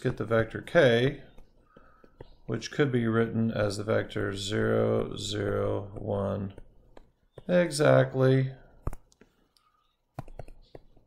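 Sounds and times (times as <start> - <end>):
stylus tapping on tablet screen: 1.2 - 2.5, 4.7 - 7.8, 8.7 - 11.0.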